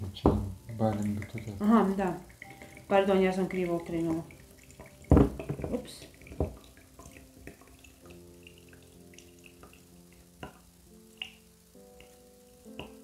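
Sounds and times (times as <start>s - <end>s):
water trickling into bottle: 0.0s - 10.6s
water dripping: 0.0s - 13.0s
small knocks: 5.0s - 6.6s.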